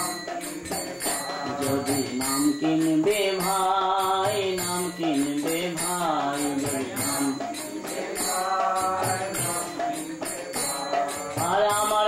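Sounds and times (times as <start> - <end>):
hand cymbals striking: 0.0 - 12.0
man singing a chant: 0.0 - 12.0.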